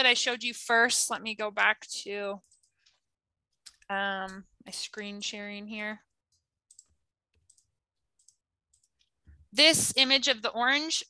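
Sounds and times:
computer mouse clicks: 0:02.4 - 0:04.4, 0:06.3 - 0:09.2.

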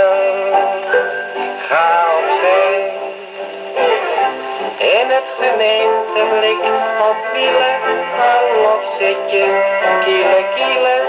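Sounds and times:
dance-band music on a gramophone: 0:00.0 - 0:11.0
person singing: 0:00.0 - 0:11.0.

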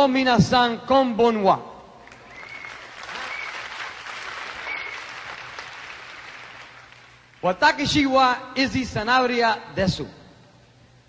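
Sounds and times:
audience applauding: 0:02.0 - 0:07.4.

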